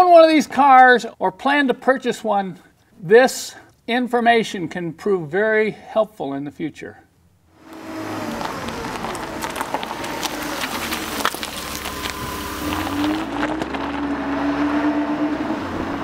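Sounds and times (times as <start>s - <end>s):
vehicle engine rumbling: 7.5s - 16.0s.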